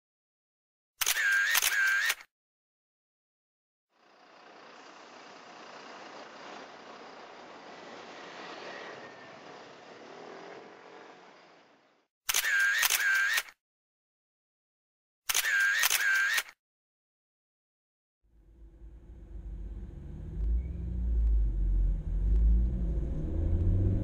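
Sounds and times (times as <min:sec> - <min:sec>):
camera shutter clicks: 0:01.0 - 0:02.3, 0:12.3 - 0:13.6, 0:15.3 - 0:16.6.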